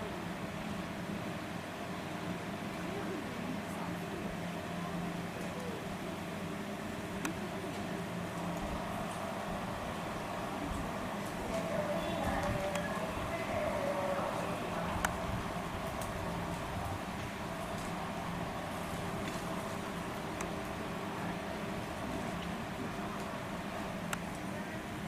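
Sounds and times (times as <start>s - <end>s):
outdoor background noise: 0.0s - 25.0s
faint voices: 1.8s - 25.0s.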